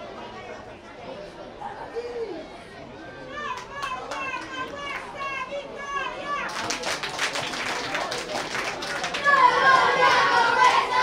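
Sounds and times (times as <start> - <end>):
murmur of voices: 0.0 - 11.0
children shouting: 9.0 - 11.0.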